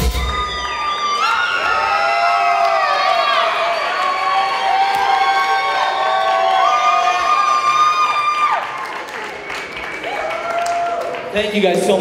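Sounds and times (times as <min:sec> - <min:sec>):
audience cheering and applauding: 0:00.0 - 0:12.0.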